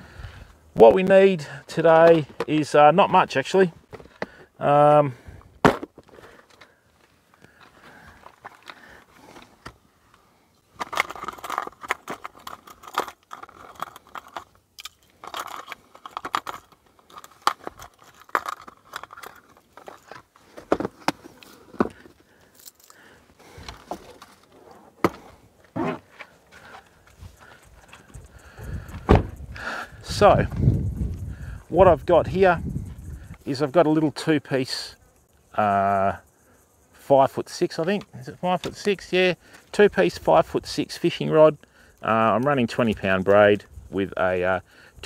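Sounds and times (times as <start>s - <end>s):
fishing gear clicking and rustling: 5.4s - 34.2s.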